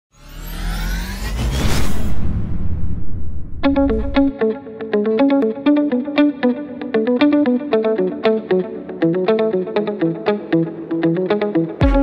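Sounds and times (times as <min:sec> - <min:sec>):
riser whoosh with rising tones: 0:00.1 - 0:04.3
low rumble: 0:00.2 - 0:04.3.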